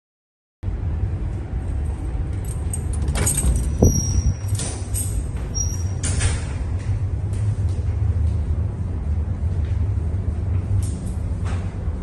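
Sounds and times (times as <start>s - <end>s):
low rumble of ship machinery: 0.6s - 12.0s.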